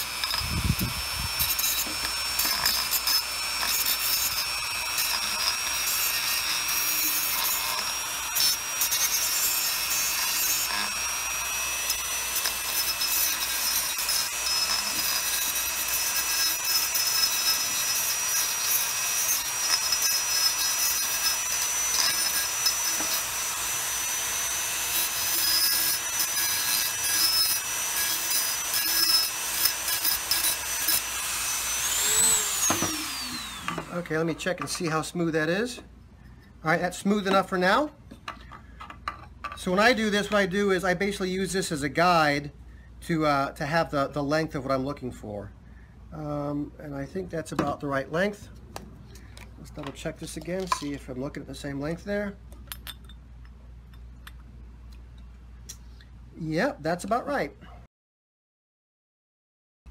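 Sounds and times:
rotary tool whining: 0.0s - 35.1s
bit grinding glass: 0.0s - 35.2s.

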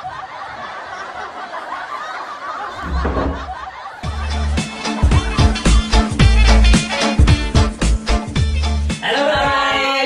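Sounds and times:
laughter: 0.0s - 5.8s
wooden door thumping shut: 2.8s - 3.6s.

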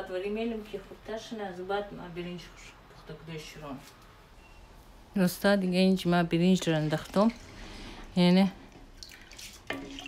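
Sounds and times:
water sloshing in a pot: 6.2s - 10.0s.

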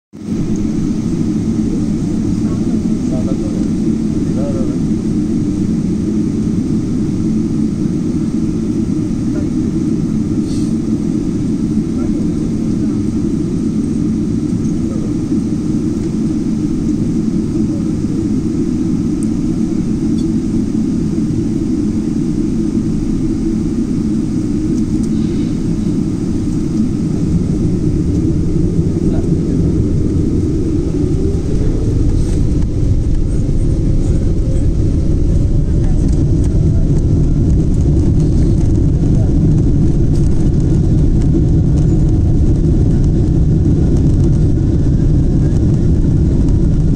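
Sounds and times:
jet engines at high thrust: 0.1s - 46.9s
low runway rumble: 0.1s - 46.9s
rising engine whine: 0.1s - 46.9s.

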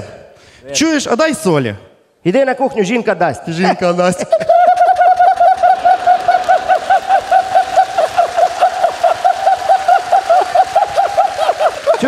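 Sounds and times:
person laughing in high pulses: 4.3s - 12.0s.

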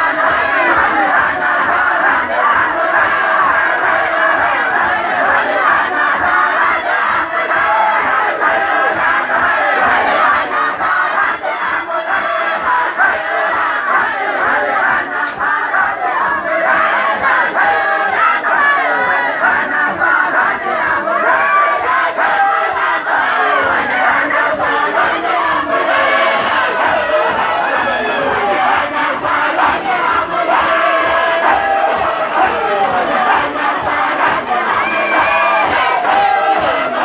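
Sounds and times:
crowd of men chanting: 0.0s - 37.0s.

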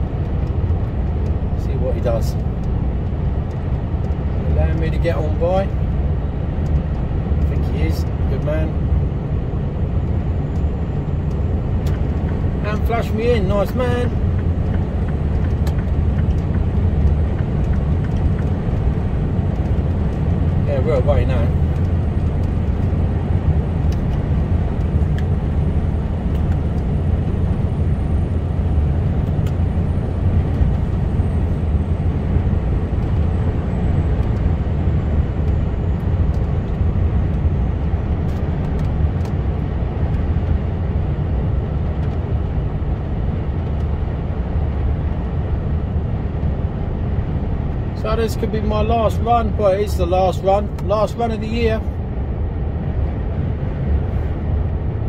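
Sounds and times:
truck engine drone: 0.0s - 55.0s.

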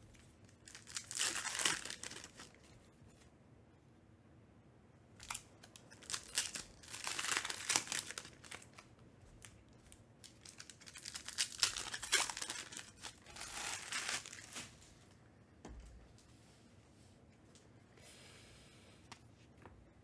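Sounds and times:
foil wrapper tearing and crinkling: 0.4s - 2.7s, 5.2s - 8.8s, 10.2s - 14.8s.

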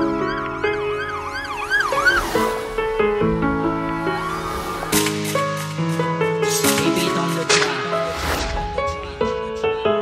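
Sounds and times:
siren-like wail: 0.0s - 5.0s.

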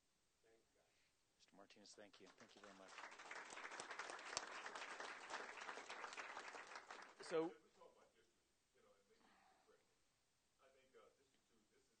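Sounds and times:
many people clapping: 2.2s - 7.5s.

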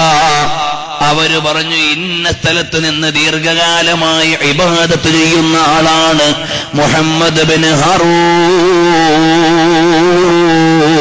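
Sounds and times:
man chanting a long note: 3.7s - 11.0s.

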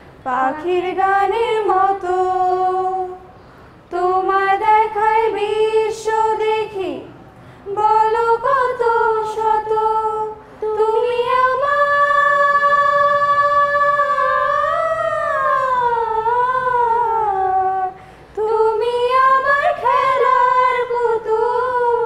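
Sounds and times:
girls singing together: 0.1s - 22.0s.

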